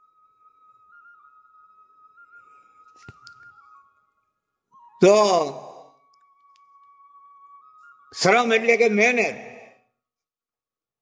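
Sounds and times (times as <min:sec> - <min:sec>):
click: 0:03.0 - 0:03.5, 0:06.1 - 0:06.9.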